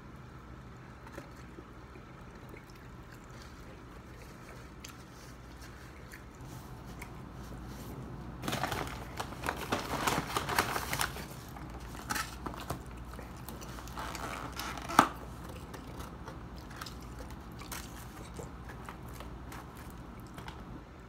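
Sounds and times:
chewing: 1.0 - 8.1, 11.3 - 20.8
paper bag crinkling: 7.4 - 20.3.

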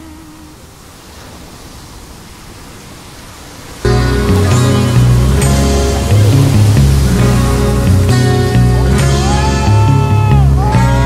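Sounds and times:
steady rushing noise: 0.0 - 10.5
loud music with heavy bass: 3.9 - 11.0.

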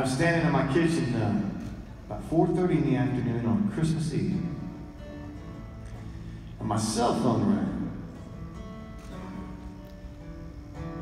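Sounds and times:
acoustic guitar chords ringing: 0.0 - 11.0.

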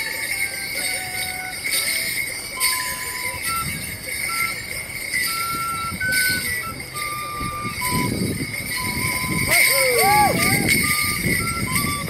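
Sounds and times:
bell pads jingling with steps: 0.0 - 12.0
whistle pipe playing a jig: 0.0 - 12.0.

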